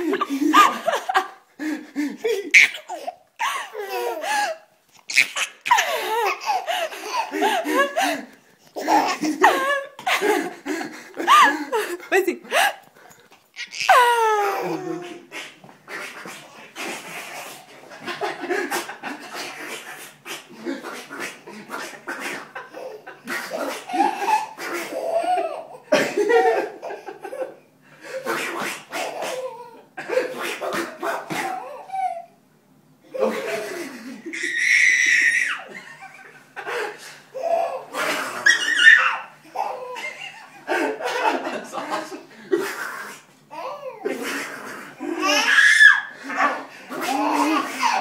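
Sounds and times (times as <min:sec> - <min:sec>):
baby giggling: 0:00.0 - 0:01.4, 0:02.3 - 0:12.7, 0:13.6 - 0:15.4, 0:21.7 - 0:27.4, 0:37.4 - 0:41.2, 0:45.2 - 0:48.0
man laughing: 0:00.0 - 0:04.5, 0:05.4 - 0:12.6.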